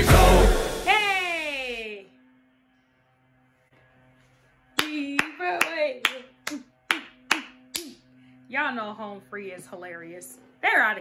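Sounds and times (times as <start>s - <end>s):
woman clapping: 4.8s - 8.0s.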